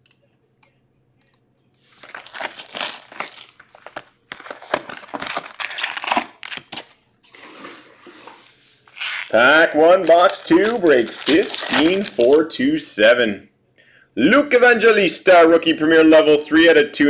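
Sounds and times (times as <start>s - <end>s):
plastic wrap and foil crinkling: 1.9s - 7.0s, 8.9s - 12.4s.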